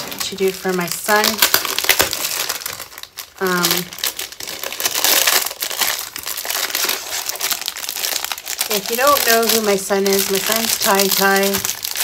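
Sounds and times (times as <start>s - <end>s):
plastic bag crinkling: 0.0s - 12.0s.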